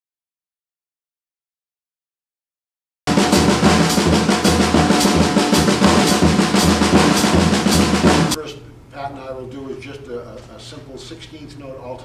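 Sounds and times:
cymbals: 3.1 - 8.4
drum kit playing fast pattern: 3.1 - 8.4.

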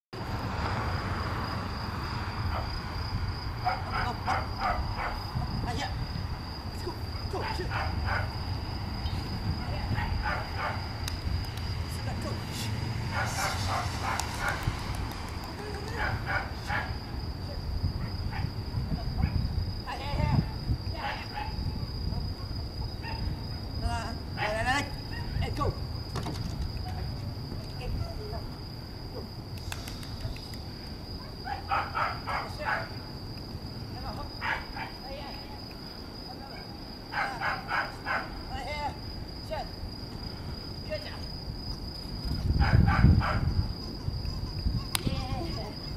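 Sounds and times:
crickets trilling: 0.2 - 45.9
dog barking: 3.6 - 5.2, 7.4 - 8.4, 9.9 - 10.9, 13.1 - 14.6, 16.0 - 17.0, 21.0 - 23.4, 31.4 - 33.0, 34.4 - 35.0, 36.5 - 38.4, 42.6 - 43.6.

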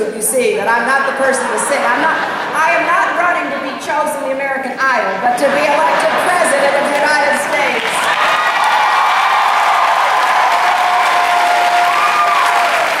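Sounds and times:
audience clapping: 6.8 - 13.0
crowd shouting: 8.0 - 13.0.

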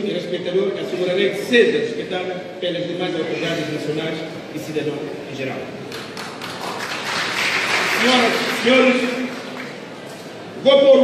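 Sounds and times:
audience applause: 5.9 - 9.9.

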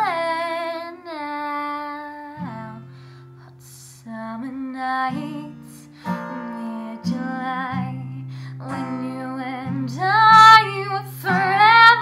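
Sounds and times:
girl singing: 0.0 - 2.9, 3.5 - 12.0
acoustic guitar chords: 0.0 - 12.0.

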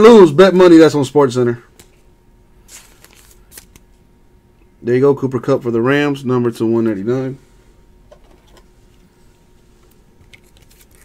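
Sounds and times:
man speaking: 0.0 - 1.7, 4.8 - 7.4.

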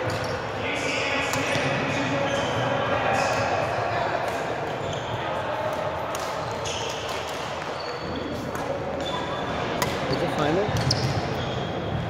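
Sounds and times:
sneakers squeaking on wooden court: 0.0 - 0.5, 4.6 - 5.3, 6.4 - 12.0
racket hitting shuttlecock: 9.8 - 10.0.

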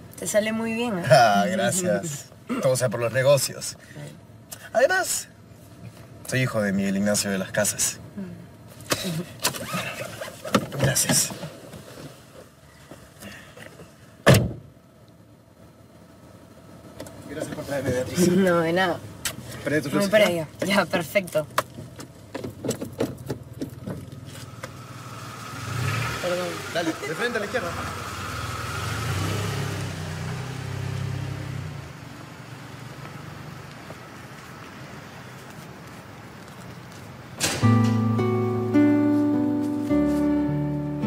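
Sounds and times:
car engine rumble: 0.0 - 41.0
car door shutting: 14.2 - 14.7, 37.4 - 38.1.

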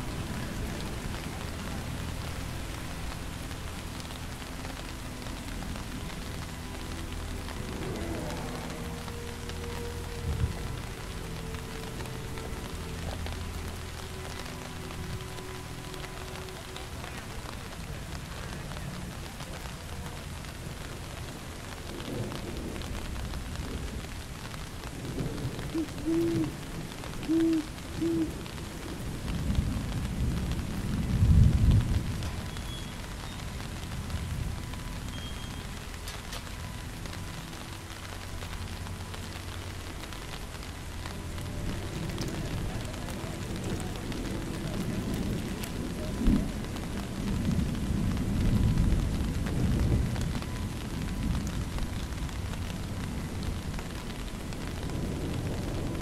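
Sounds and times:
steady rain: 0.0 - 56.0
thunder rumbling: 0.0 - 56.0
owl hoots: 25.7 - 26.6, 27.3 - 28.4.

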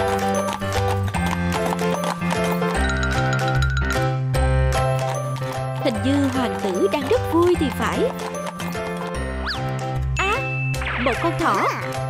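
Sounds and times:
horse hooves clip-clopping: 0.0 - 10.1
background music: 0.0 - 12.0.

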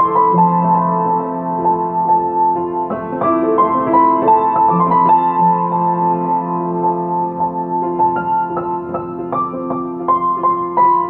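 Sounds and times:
soft slow piano chords: 0.0 - 11.0.

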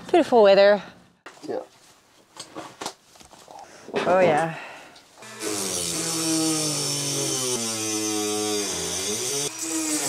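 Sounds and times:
rotary tool grinding: 5.2 - 10.0.

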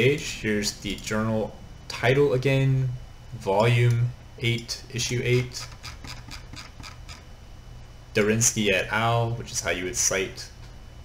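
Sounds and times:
steady low hum: 0.0 - 11.0
mouse scroll wheel ticking: 5.4 - 7.2.

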